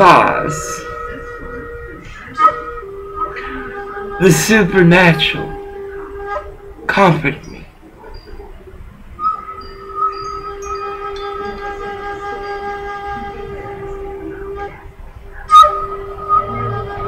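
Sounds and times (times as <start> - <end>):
sustained chord of steady tones: 0.0 - 17.0.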